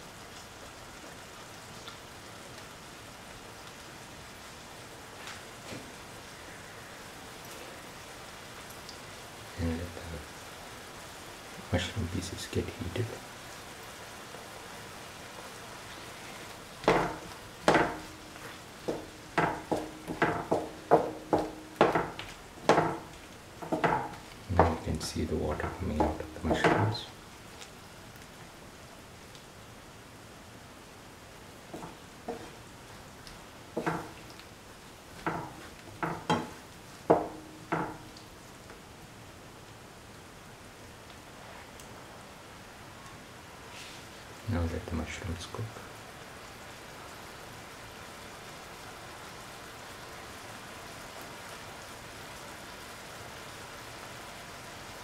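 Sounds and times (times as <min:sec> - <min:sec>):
vegetables sizzling in a pan: 0:00.0 - 0:40.6, 0:41.2 - 0:55.0
utensil scraping and knocking pan: 0:16.8 - 0:27.0, 0:31.8 - 0:32.6, 0:33.8 - 0:34.2.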